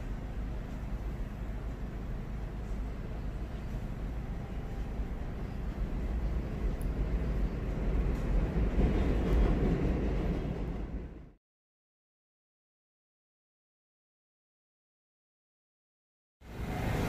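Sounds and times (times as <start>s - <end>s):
elevated subway train rumbling: 0.0s - 11.4s, 16.4s - 17.0s.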